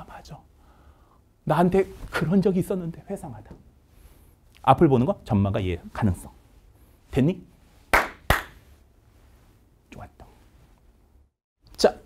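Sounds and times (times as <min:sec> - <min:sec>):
man clapping hands: 0:07.9 - 0:08.6.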